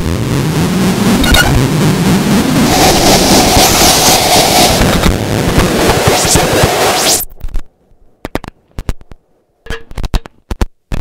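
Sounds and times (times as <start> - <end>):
mid-pitched drone: 0.0 - 7.2
distorted noise wash: 0.0 - 11.0.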